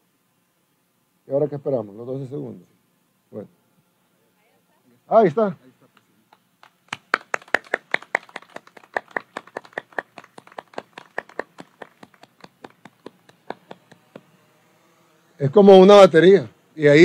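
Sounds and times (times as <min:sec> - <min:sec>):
people applauding: 0:06.6 - 0:14.3.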